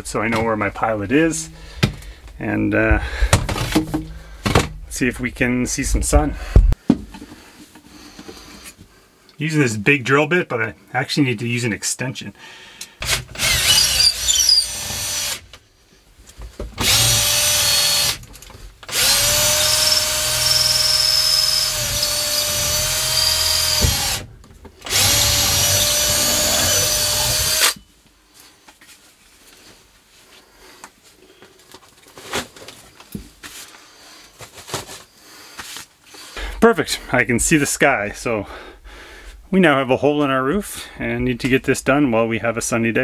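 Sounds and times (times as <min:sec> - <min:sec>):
drill motor running: 0:13.0 - 0:15.4, 0:16.8 - 0:18.2, 0:18.9 - 0:27.8
handling and rustling: 0:27.8 - 0:36.3.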